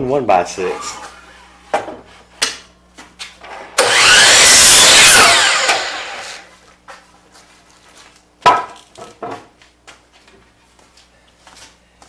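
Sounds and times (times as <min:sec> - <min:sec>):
miter saw cutting board: 0:03.7 - 0:06.5.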